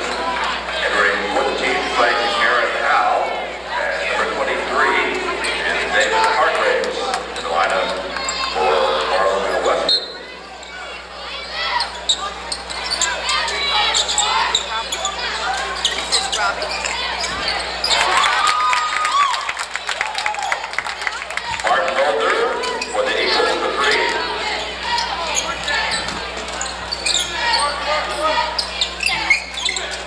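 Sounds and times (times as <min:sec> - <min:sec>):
spectators' voices: 0:00.0 - 0:30.0.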